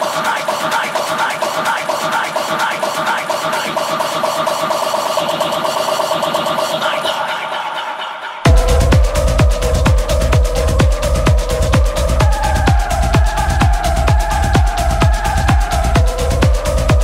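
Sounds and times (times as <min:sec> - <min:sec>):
fast hi-hat percussion: 0:00.0 - 0:07.6, 0:08.4 - 0:17.0.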